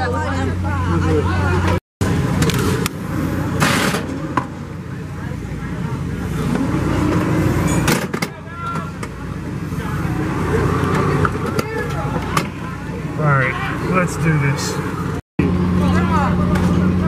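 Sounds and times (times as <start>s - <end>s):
ride machinery hum: 0.0s - 17.0s.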